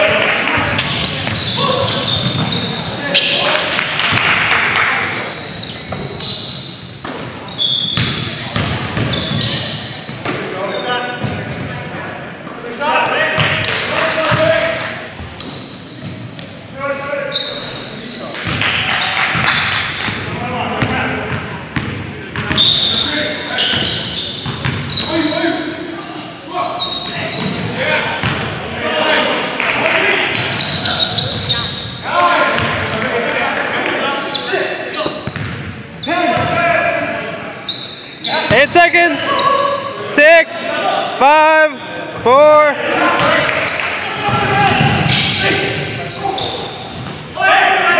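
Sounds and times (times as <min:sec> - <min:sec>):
players calling out: 0:00.0 - 0:12.0, 0:12.8 - 0:47.9
sneaker squeaks: 0:00.6 - 0:03.5, 0:04.5 - 0:11.7, 0:13.0 - 0:21.2, 0:21.8 - 0:28.8, 0:29.7 - 0:33.1, 0:33.8 - 0:40.3, 0:43.2 - 0:47.9.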